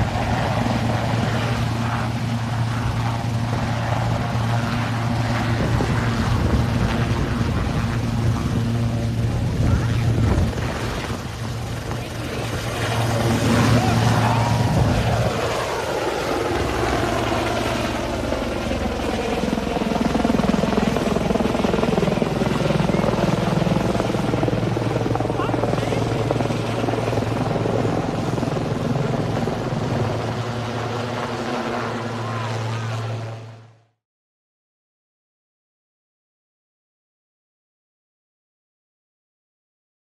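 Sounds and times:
helicopter lifting off: 0:00.0 - 0:34.0
low rotor hum: 0:00.0 - 0:34.0.

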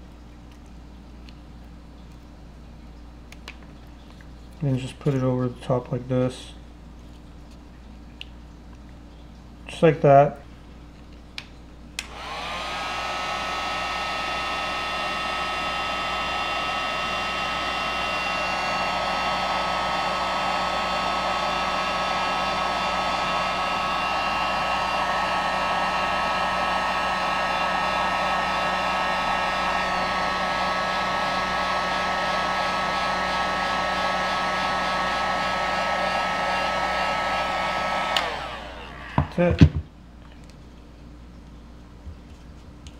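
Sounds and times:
fan winding down: 0:12.0 - 0:39.7
heat gun whirring: 0:12.0 - 0:39.8.

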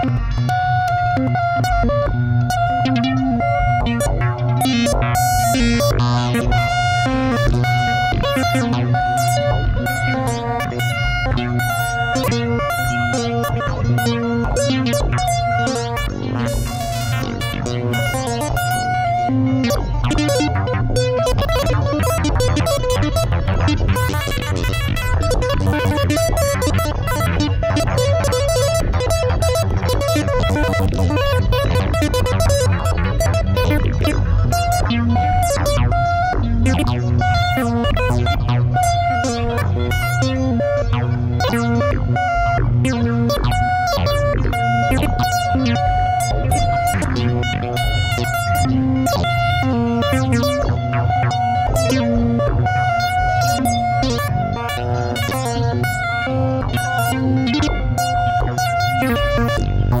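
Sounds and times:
low synth bass: 0:00.0 - 1:00.0
plucked synth notes: 0:00.0 - 1:00.0.

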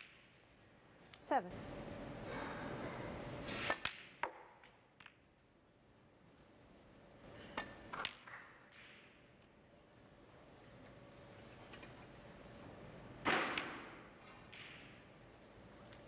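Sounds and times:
faint steady hum: 0:00.0 - 0:16.0
snooker balls clicking: 0:03.5 - 0:05.3, 0:07.5 - 0:09.5, 0:13.5 - 0:15.2.

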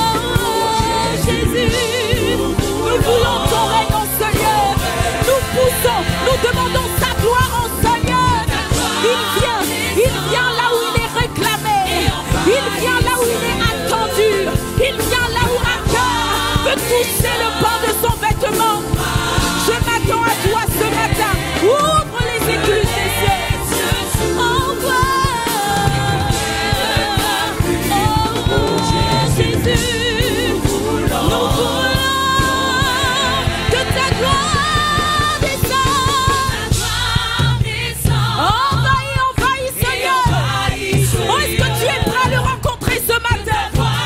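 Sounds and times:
woman singing into microphone: 0:00.0 - 0:36.8, 0:38.0 - 0:44.0
band playing gospel music: 0:00.0 - 0:44.0
choir singing: 0:00.0 - 0:44.0.

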